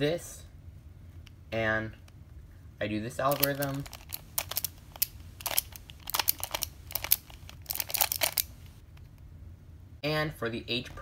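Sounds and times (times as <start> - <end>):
plastic puzzle clicking: 3.3 - 8.5.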